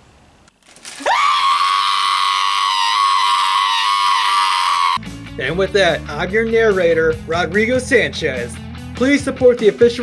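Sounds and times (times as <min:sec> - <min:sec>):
man screaming: 0:01.0 - 0:05.0.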